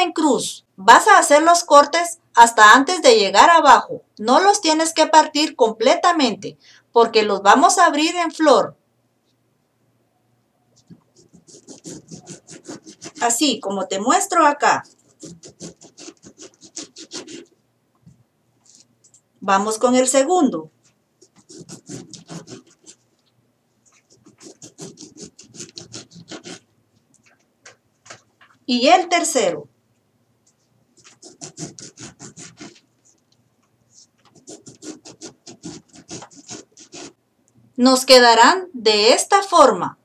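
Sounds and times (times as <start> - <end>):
knife sawing into lime rind: 11.5 - 13.4, 14.8 - 17.5, 21.5 - 22.9, 24.2 - 26.6, 31.1 - 32.8, 34.4 - 37.1.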